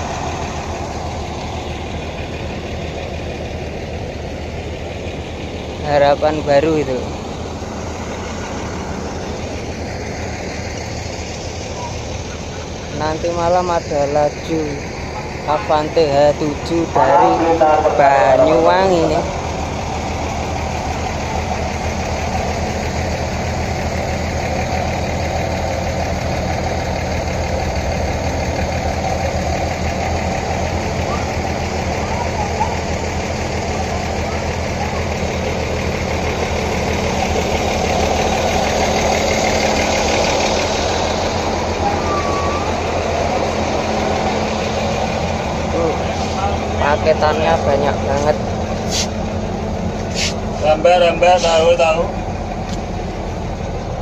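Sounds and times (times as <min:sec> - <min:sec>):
diesel bus engine idling: 0:00.0 - 0:54.0
background voices: 0:11.7 - 0:19.7, 0:45.5 - 0:52.3.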